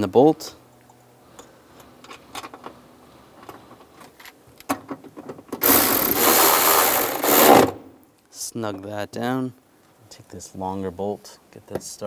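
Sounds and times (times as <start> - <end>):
cordless ratchet running: 5.6 - 7.6.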